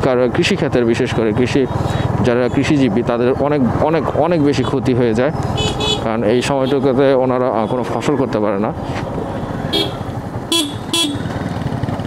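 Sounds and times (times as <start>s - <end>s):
road noise: 0.0s - 12.0s
vehicle horn toots: 5.6s - 6.8s, 9.7s - 11.3s
motorcycle engine running: 9.1s - 12.0s.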